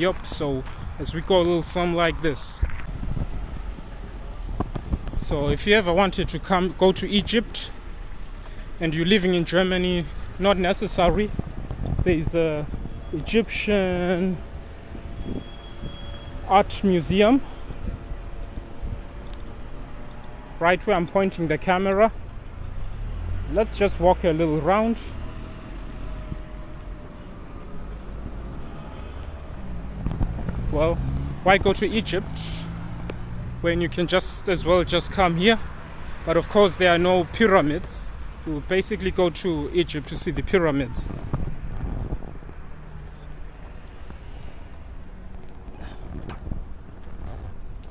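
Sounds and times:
wind buffeting microphone: 0.0 - 5.8, 10.8 - 13.6, 17.0 - 20.1, 25.7 - 28.6, 29.2 - 31.9, 40.8 - 47.9
city traffic rumble: 0.0 - 47.9
vehicle engine passing: 22.6 - 37.3.

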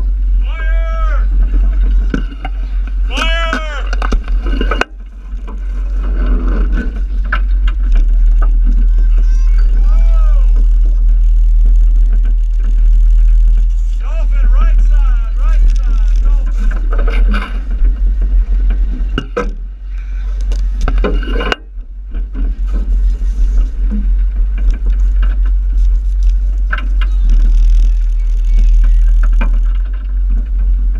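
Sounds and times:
boat engine rumble: 0.0 - 30.9
people shouting: 0.4 - 1.4, 3.0 - 4.0, 8.8 - 11.0.

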